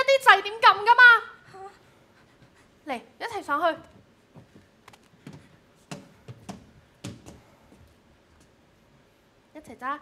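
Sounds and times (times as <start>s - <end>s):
knocks and thumps on cardboard: 5.2s - 7.5s.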